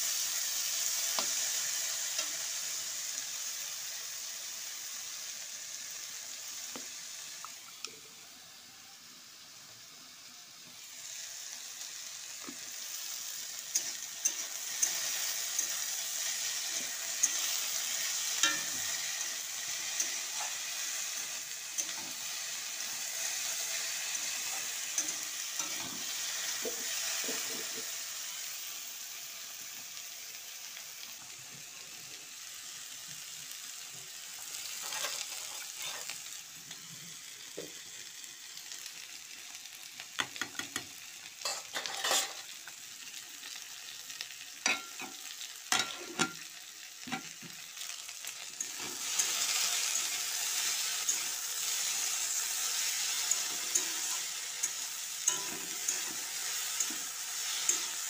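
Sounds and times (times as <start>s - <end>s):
potatoes sizzling in hot oil: 0.0s - 58.0s
spatula scraping metal pan: 34.8s - 36.1s, 41.5s - 42.4s.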